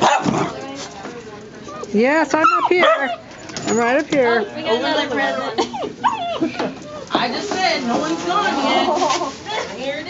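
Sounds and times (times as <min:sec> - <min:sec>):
puppy barking: 0:00.0 - 0:00.5, 0:02.4 - 0:03.2
puppies scuffling: 0:00.0 - 0:10.0.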